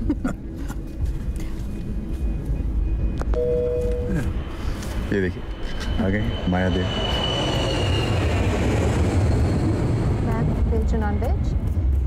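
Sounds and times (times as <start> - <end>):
jet engines rumbling: 0.0 - 12.0
thin high whine: 1.4 - 8.5.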